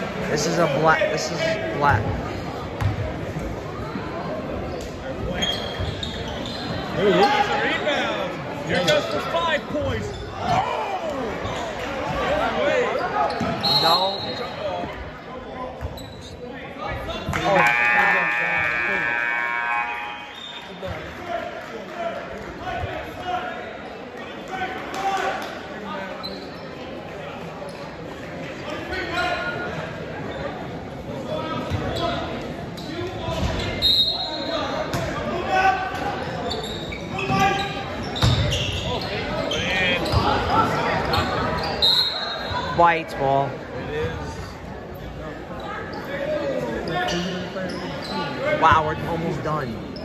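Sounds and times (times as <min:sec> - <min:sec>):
crowd voices in echoing gym: 0:00.0 - 0:50.0.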